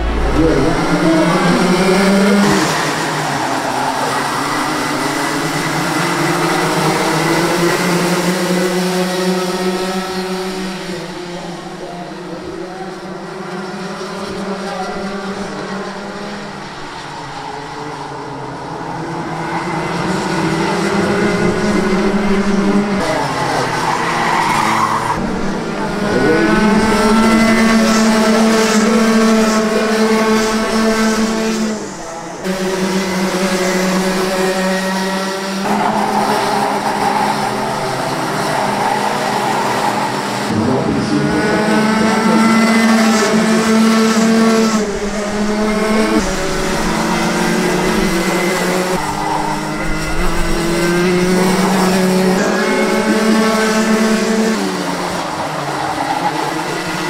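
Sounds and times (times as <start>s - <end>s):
racing karts engines: 0.0s - 57.0s.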